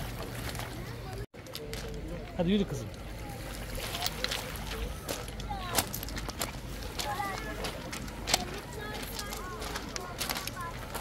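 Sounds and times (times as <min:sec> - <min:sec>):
faint voices: 0:00.5 - 0:11.0
footsteps crunching on pebbles: 0:03.8 - 0:11.0.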